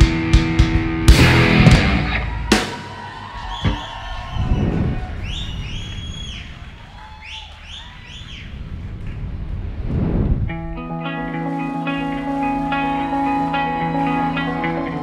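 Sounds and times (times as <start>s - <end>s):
rock band song: 0.0s - 3.3s
whooshes: 8.4s - 10.8s.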